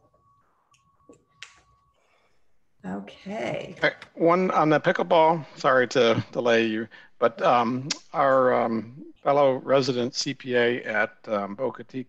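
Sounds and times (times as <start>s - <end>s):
faint steady high tone: 0.0s - 3.9s, 4.5s - 12.0s
person speaking: 2.9s - 12.0s.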